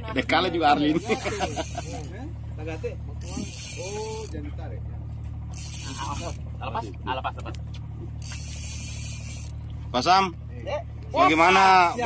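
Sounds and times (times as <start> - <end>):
boat engine hum: 0.0 - 12.0
fishing reel ratcheting: 0.8 - 2.3, 3.2 - 4.4, 5.5 - 6.4, 8.2 - 9.8, 11.2 - 12.0
hissing reel drag: 0.9 - 4.4, 5.5 - 6.4, 8.2 - 9.8, 11.3 - 12.0.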